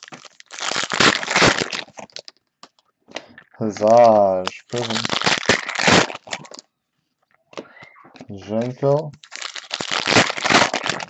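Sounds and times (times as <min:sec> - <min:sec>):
plastic packaging crinkling: 0:00.0 - 0:06.7, 0:08.2 - 0:11.0.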